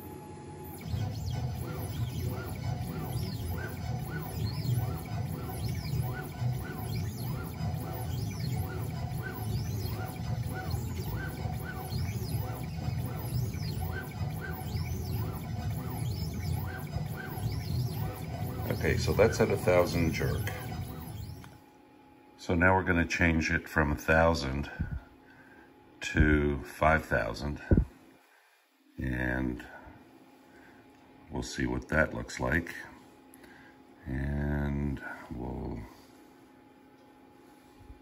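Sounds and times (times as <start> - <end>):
stepper motors whining: 0.0 - 21.6
steady low hum: 0.0 - 38.0.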